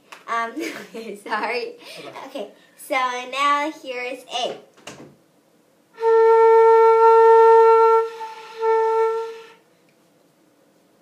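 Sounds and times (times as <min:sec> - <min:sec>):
flute playing held note: 0:06.0 - 0:09.6
flute breath noise: 0:07.9 - 0:09.7.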